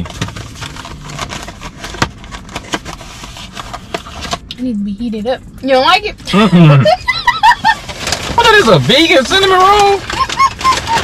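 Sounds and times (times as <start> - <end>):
cardboard box crackling: 7.7 - 11.0.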